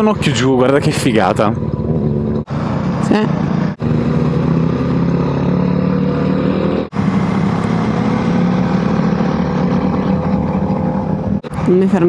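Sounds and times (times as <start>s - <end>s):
motorcycle engine running: 0.0s - 6.3s, 6.9s - 12.0s.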